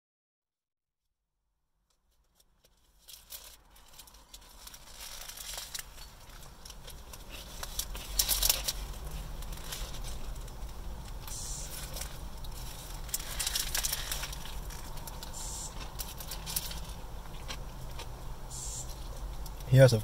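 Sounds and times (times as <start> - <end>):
paper wrapper rustling: 2.1 - 17.6
bites and chewing: 4.1 - 18.2.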